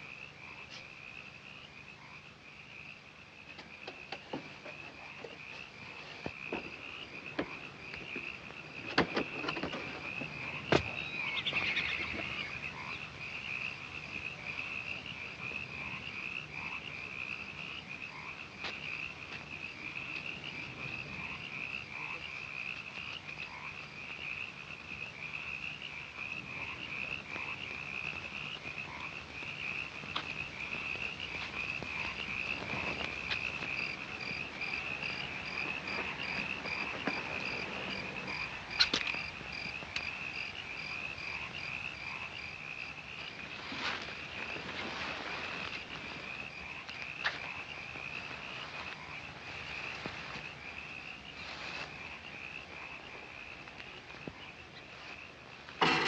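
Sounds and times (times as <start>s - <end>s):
frogs and insects trilling: 0.0s - 56.0s.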